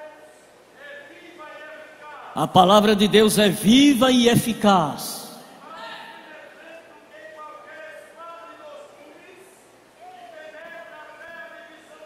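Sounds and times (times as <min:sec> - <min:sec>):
man preaching echoing in a hall: 0:00.8 - 0:12.0.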